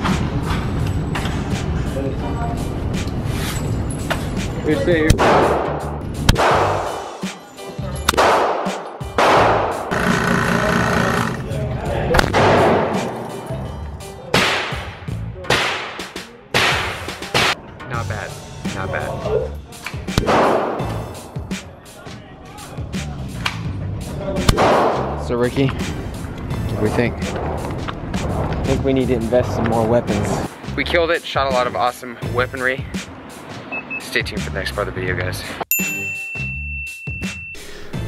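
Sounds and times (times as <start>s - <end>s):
background music: 0.0s - 38.0s
pistol shots echoing: 8.1s - 9.8s, 20.2s - 20.9s.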